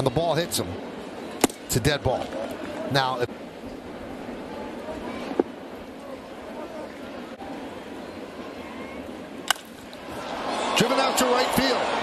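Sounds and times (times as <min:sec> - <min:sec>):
stadium crowd murmur: 0:00.0 - 0:12.0
baseball hitting wooden bat: 0:09.4 - 0:09.9.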